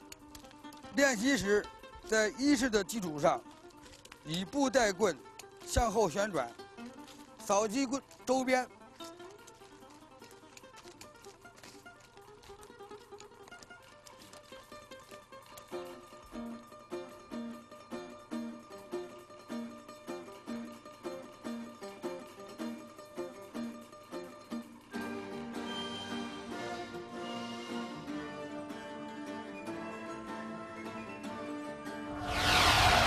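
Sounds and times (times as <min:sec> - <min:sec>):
plucked string instrument music: 0:00.0 - 0:25.7.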